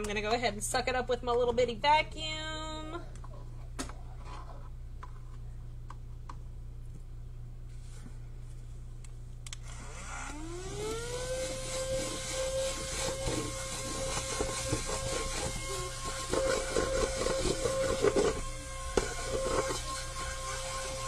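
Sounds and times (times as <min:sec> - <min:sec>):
handheld vacuum motor whine: 0:09.6 - 0:21.0.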